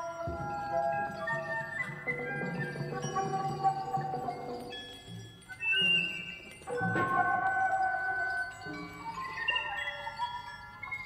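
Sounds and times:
high chime-like tones: 0.0 - 11.0.

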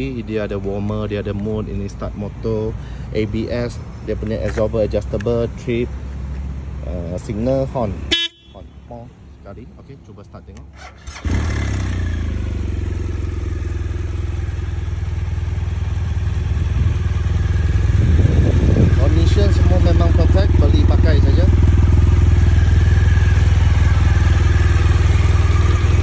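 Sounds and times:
motorcycle engine idling: 8.1 - 8.8, 11.0 - 26.0.

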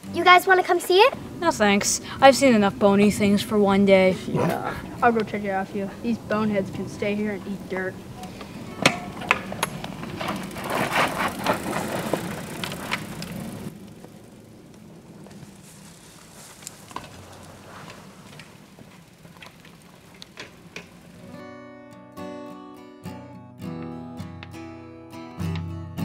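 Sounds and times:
bike clicks and knocks: 8.2 - 21.2
tyres and feet crunching on dirt: 8.4 - 14.2, 14.8 - 21.2.

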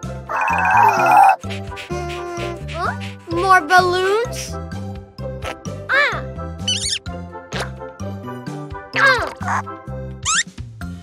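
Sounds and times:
cartoon music with stepping bass: 0.0 - 11.0
cartoon character vocalization: 0.3 - 3.0, 9.0 - 9.6.

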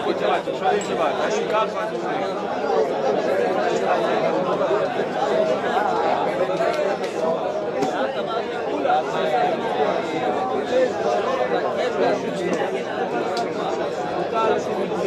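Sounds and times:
many men studying aloud: 0.0 - 15.0.

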